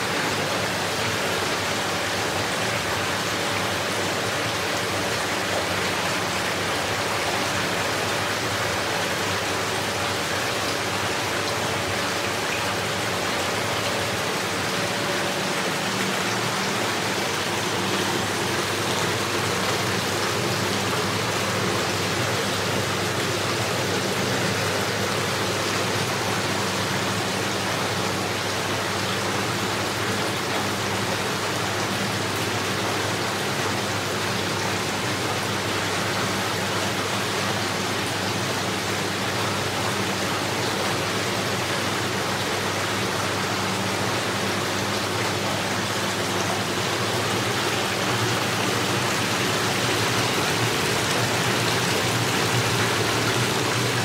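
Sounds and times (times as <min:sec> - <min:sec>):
spa bath jets bubbling water: 0:00.0 - 0:54.0.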